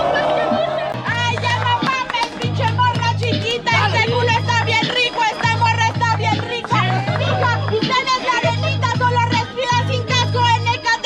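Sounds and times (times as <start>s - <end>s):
hip-hop beat with deep bass: 0.0s - 11.0s.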